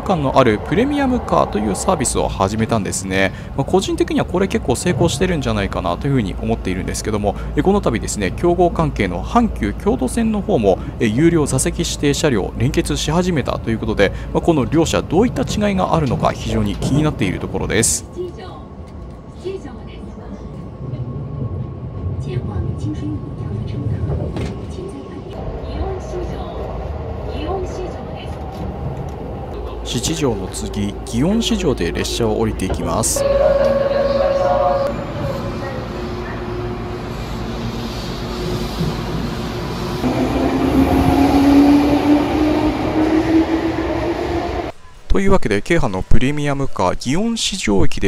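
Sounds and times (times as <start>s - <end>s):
train rumbling: 0.0s - 45.1s.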